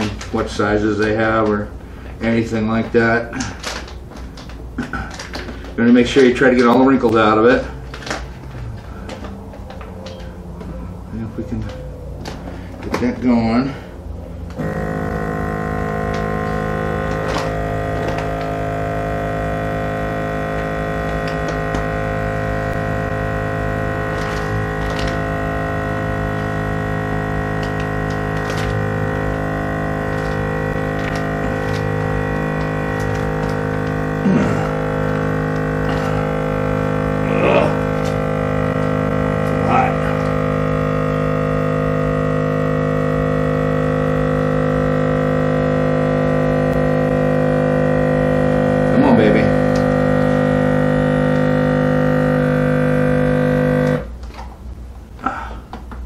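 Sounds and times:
vacuum sealer pump droning: 0.0 - 56.0.

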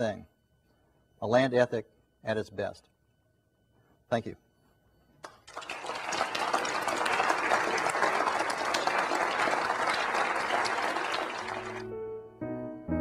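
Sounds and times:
audience applauding: 5.2 - 11.9.

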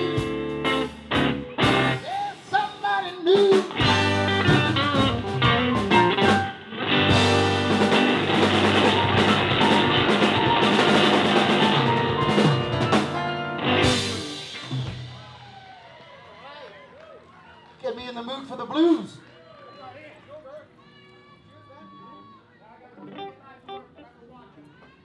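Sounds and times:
live blues band playing: 0.0 - 15.8, 23.0 - 24.0
electric guitar bent notes: 3.7 - 15.2.

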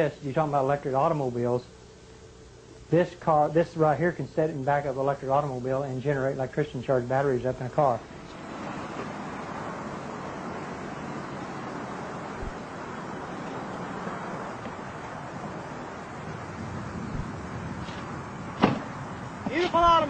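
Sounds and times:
wind noise on microphone: 8.4 - 20.0.

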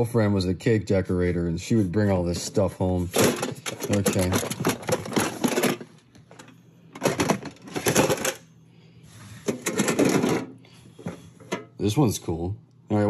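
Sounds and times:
tin lunchboxes clattering: 3.0 - 8.4, 9.5 - 10.5
contents rattling: 3.1 - 8.4, 9.5 - 10.5.

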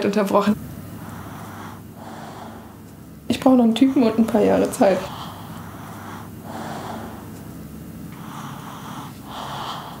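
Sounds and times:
soft breathing: 0.9 - 10.0.

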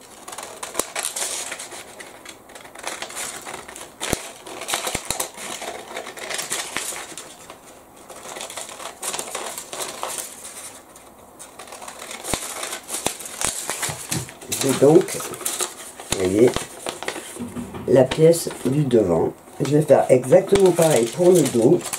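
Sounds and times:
scissors snipping paper: 0.0 - 7.5, 8.1 - 10.8, 11.4 - 17.4, 19.6 - 21.9
stiff paper crinkling: 0.0 - 21.9.

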